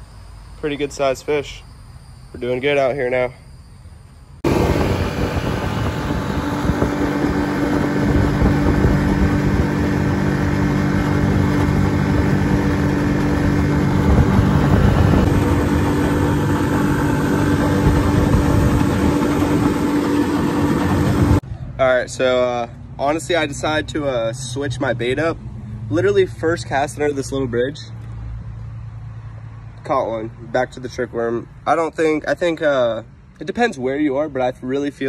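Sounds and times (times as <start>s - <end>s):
outboard motor running: 4.4s - 21.4s.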